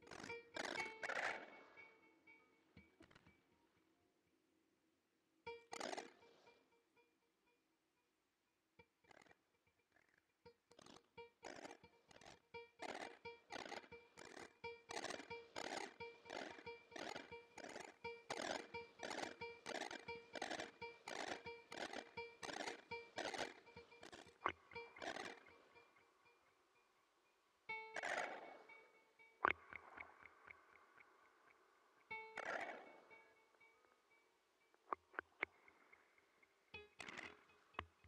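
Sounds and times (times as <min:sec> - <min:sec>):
faint high held tones: 0:11.2 - 0:37.8.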